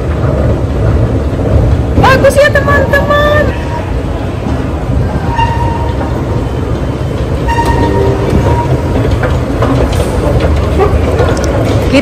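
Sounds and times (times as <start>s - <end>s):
metro train rumble: 0.0s - 12.0s.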